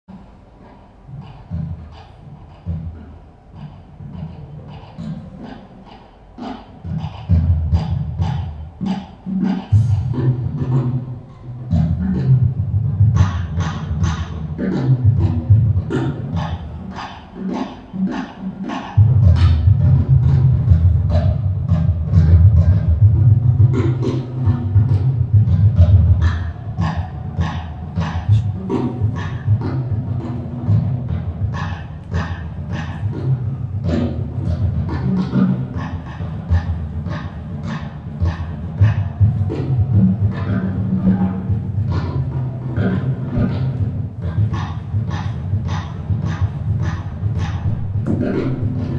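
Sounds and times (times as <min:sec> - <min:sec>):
percussive music with low tone: 0:00.1 - 0:48.9.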